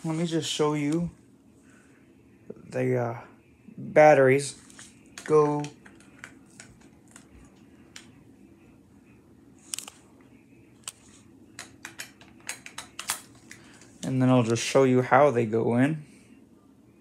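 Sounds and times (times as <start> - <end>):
small objects clicking and tapping: 11.6 - 13.6.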